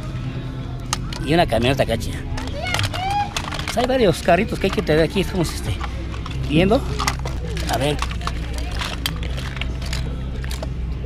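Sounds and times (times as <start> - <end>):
toy cars clicking: 0.8 - 10.8.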